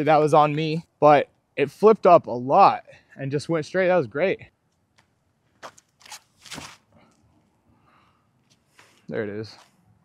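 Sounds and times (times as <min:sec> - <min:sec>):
feet scuffing on dirt: 0:05.6 - 0:06.9.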